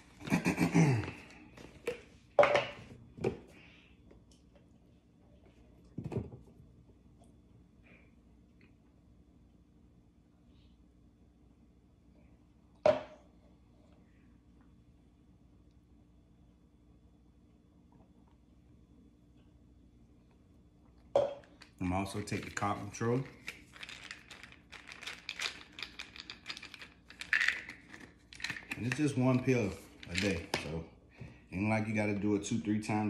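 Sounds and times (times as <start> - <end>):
pill bottle cap clicks and crinkles: 23.4 - 29.2.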